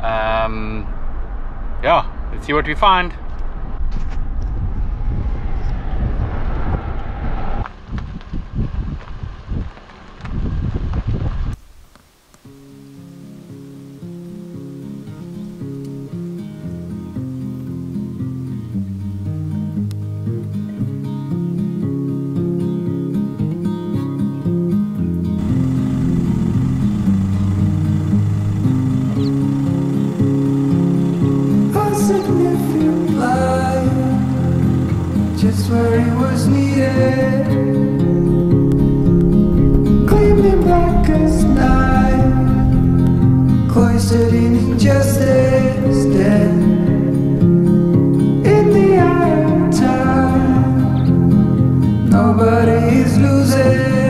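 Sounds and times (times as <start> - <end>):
car engine and road noise: 0.0 - 20.2, 25.1 - 51.9
slow music with held notes: 12.4 - 54.0.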